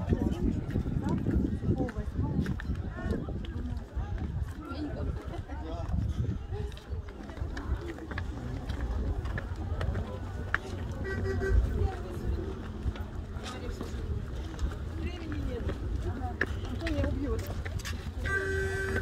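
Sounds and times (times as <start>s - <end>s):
people talking: 0.0s - 19.0s.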